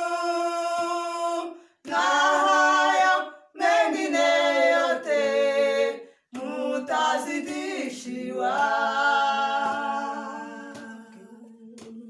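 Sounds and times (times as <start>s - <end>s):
women singing a cappella: 0.0s - 12.0s.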